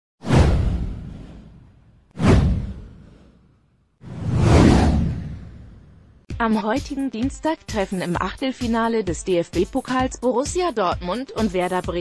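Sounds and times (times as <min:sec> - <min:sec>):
whoosh sound effect: 0:00.2 - 0:06.2.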